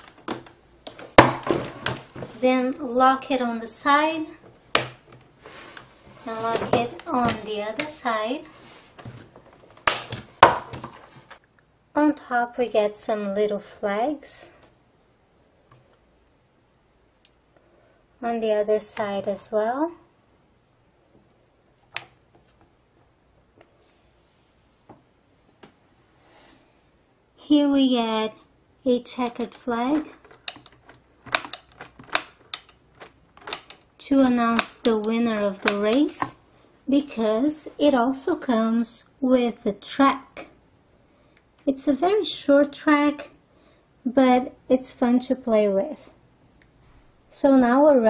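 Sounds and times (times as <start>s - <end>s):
plastic clicks and taps: 29.3s - 33.9s.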